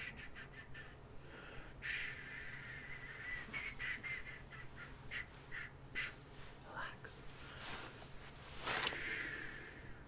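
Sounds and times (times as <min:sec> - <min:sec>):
breathy shushing: 0:06.4 - 0:10.0.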